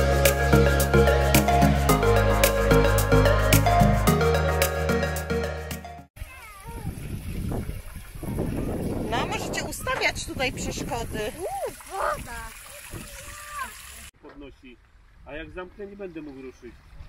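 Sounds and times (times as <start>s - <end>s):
children calling and squealing: 6.2s - 10.1s, 11.3s - 14.0s
water splashing: 6.2s - 14.1s.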